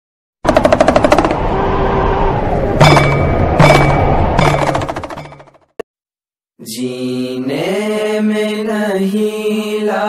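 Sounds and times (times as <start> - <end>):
rapid pitched hits: 0.4 - 1.5, 2.8 - 5.6
sustained held tone: 2.0 - 4.6.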